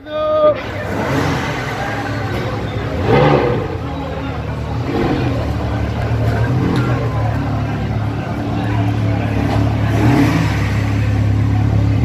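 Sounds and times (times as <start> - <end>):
people talking: 0.0 - 12.0
car engine at low revs: 0.6 - 12.0.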